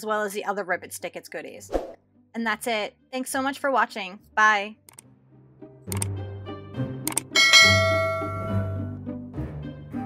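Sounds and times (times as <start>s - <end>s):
background music: 0.0s - 10.0s
mouse clicks: 5.9s - 6.1s, 7.1s - 7.3s
bell chime: 7.4s - 8.9s.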